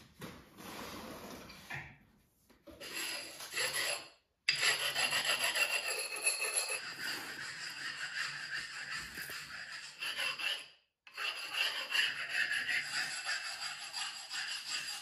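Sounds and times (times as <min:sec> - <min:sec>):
metal spatula scraping mortar: 0:02.7 - 0:15.0.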